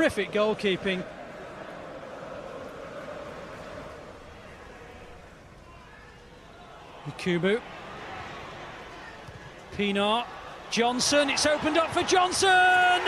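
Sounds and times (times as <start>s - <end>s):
stadium crowd din: 0.0s - 13.0s.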